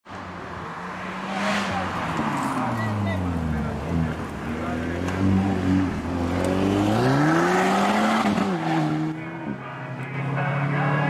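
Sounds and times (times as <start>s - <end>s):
sports car engine driving uphill: 0.1s - 11.0s.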